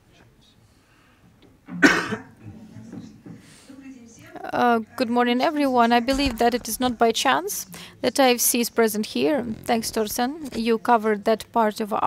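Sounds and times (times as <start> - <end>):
person coughing: 1.7 - 2.4.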